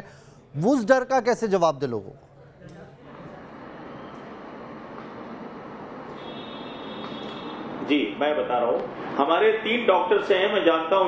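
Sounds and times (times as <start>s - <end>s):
faint high whine: 2.2s - 8.8s.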